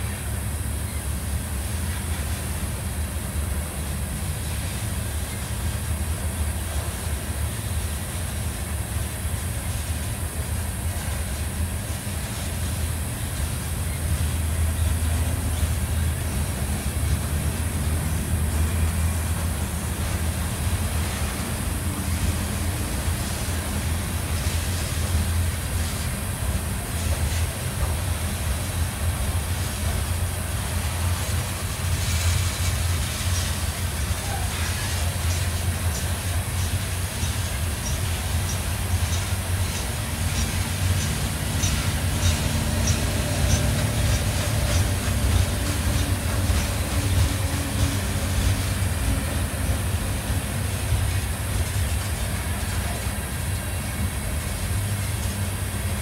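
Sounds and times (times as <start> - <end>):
freight train wheels rumbling on rail: 0.0 - 56.0.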